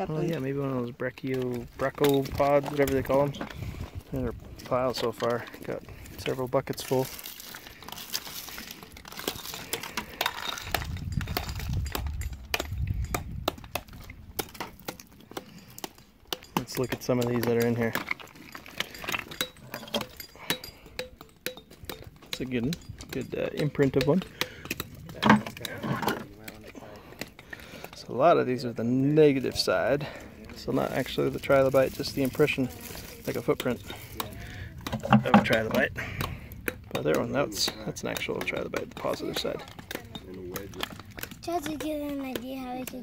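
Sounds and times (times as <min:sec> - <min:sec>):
shale pieces clinking: 0:06.9 - 0:12.5.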